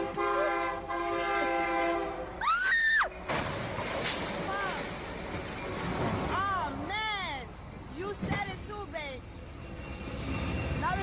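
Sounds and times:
train horn blaring: 0.0s - 2.4s
woman screaming: 2.4s - 3.1s.

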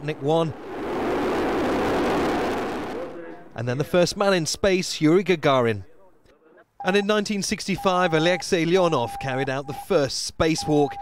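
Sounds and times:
rocket engines roaring: 0.0s - 3.9s.

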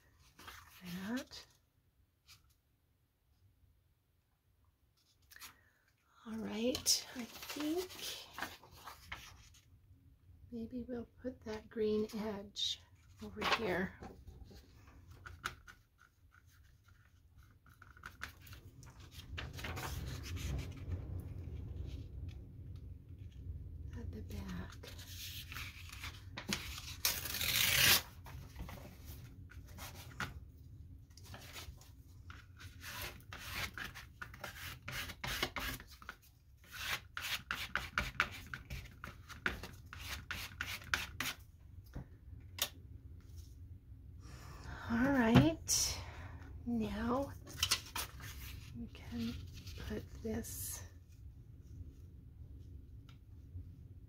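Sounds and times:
paper rustling and scraping: 0.2s - 1.5s, 6.7s - 9.7s, 13.1s - 22.0s, 24.7s - 30.4s, 31.1s - 41.4s, 47.4s - 50.2s
paper tearing: 24.9s - 28.3s.

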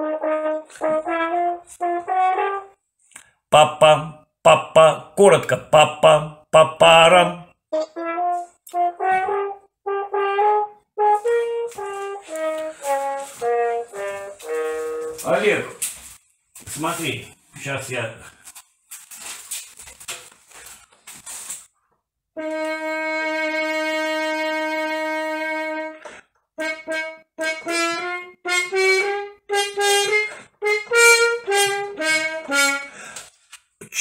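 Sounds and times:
french horn playing: 0.0s - 2.8s, 7.8s - 15.9s, 22.4s - 33.0s.

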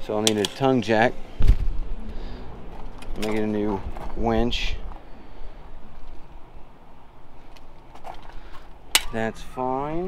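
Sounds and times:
low outdoor rumble: 0.0s - 9.0s.

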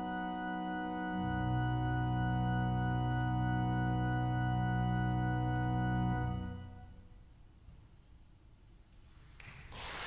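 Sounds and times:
low organ bass note: 0.0s - 7.1s
church organ sustained chord: 0.0s - 8.6s.

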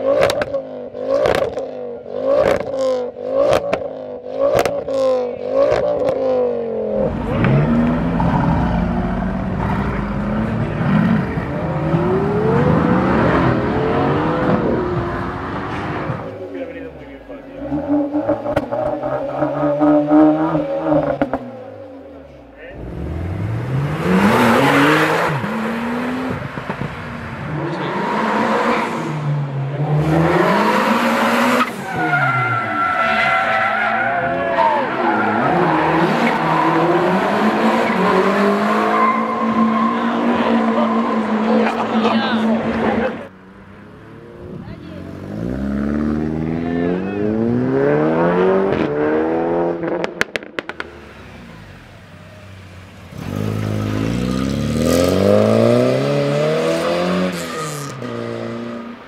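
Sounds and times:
car accelerating hard: 0.0s - 22.2s, 22.8s - 59.0s
car engine revving: 0.0s - 59.0s.

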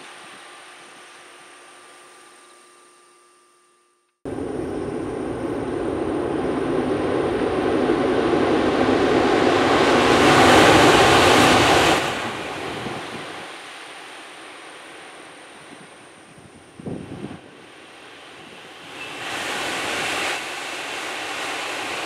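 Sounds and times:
high-speed train rushing rumble: 4.3s - 22.0s.

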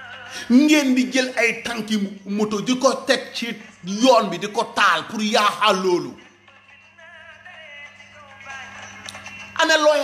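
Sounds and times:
faint music with singing: 0.0s - 10.0s.

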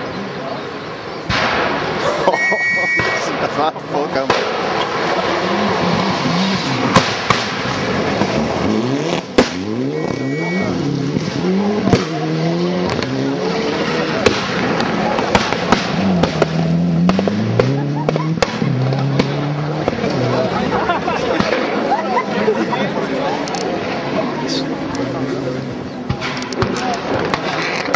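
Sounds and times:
rally car engine revving: 1.4s - 22.0s
sharp cracks: 3.0s - 5.3s, 6.4s - 10.2s, 14.1s - 20.1s, 26.1s - 27.9s.

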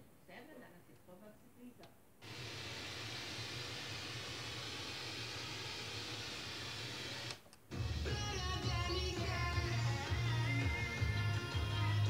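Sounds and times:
radio music: 7.7s - 12.0s.

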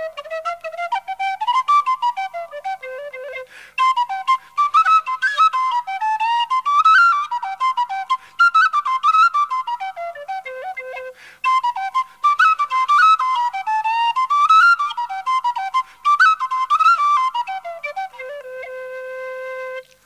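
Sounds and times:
tin whistle playing a jig: 0.0s - 20.0s.

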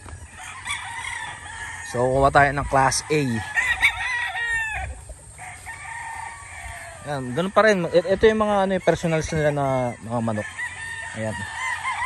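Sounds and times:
rooster crowing: 0.2s - 12.0s.

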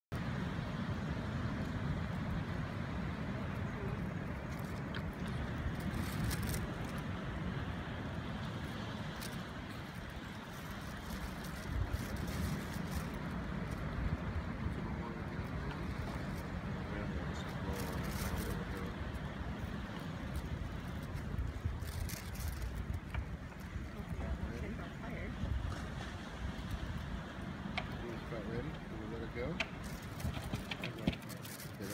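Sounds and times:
ocean surf: 0.1s - 31.9s
wind rumble: 0.1s - 31.9s.

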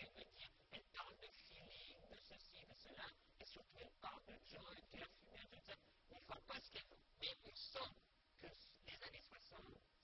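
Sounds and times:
faint man talking: 0.0s - 9.9s.

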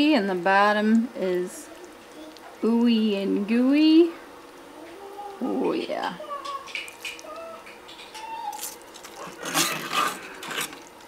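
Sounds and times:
crispy topping crunching: 6.5s - 11.0s
metal tongs scraping baking dish: 9.2s - 10.9s.

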